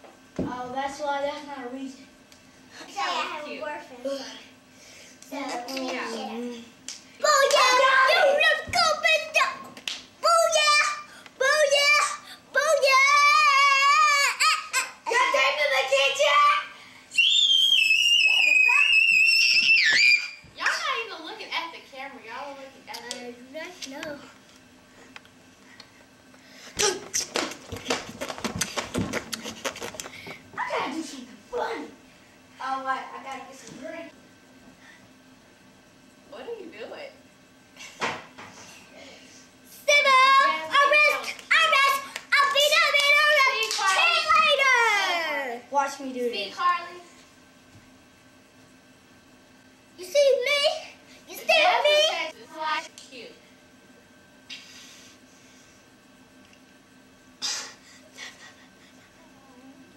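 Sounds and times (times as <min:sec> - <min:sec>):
high-pitched whistling tone: 0:17.1 - 0:20.4.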